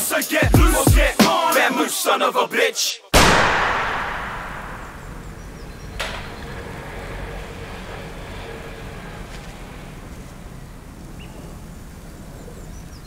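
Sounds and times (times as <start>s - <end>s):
loud echoing bang: 3.2s - 6.4s.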